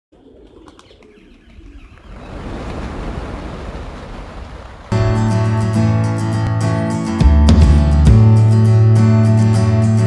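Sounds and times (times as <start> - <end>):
pigeon wing claps: 0.4 - 2.9.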